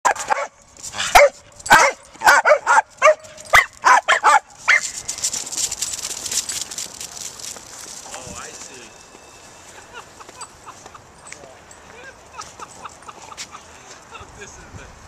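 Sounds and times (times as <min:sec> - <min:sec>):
scuffing and clicking on concrete: 0:00.1 - 0:14.1
small dog barking: 0:01.1 - 0:04.9.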